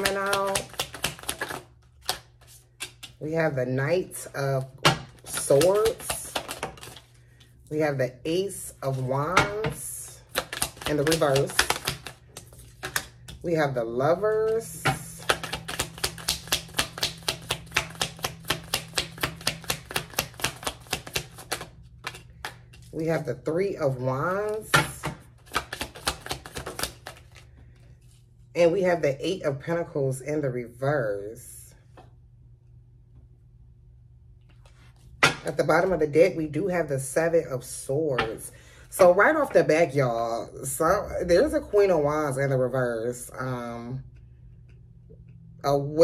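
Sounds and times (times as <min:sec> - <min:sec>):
cards snapping and clicking: 0:00.0 - 0:03.2, 0:10.3 - 0:13.3, 0:15.2 - 0:22.9, 0:25.4 - 0:27.4
low steady hum: 0:00.0 - 0:46.0.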